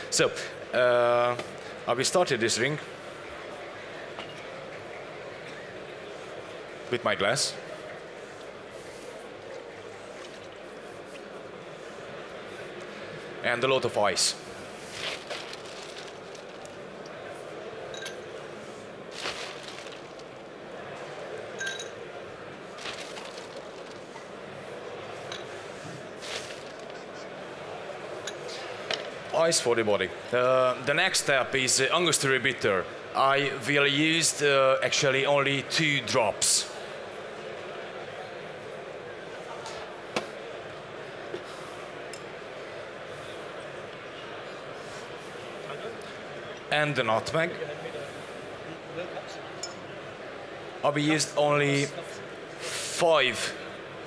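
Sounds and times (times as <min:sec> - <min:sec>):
hum of large hall: 0:00.0 - 0:54.0
glassware clicking: 0:17.9 - 0:18.2, 0:21.6 - 0:22.0.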